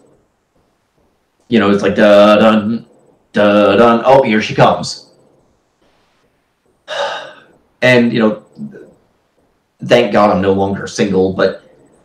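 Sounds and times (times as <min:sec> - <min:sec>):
person gasping: 0:06.9 - 0:07.5.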